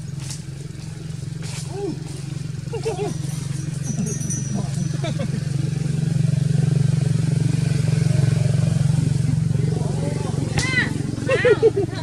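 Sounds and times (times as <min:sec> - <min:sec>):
motor engine running: 0:00.0 - 0:12.0.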